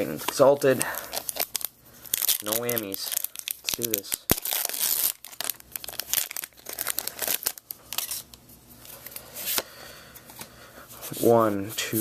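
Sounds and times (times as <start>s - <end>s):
foil wrapper crinkling: 0.8s - 8.4s.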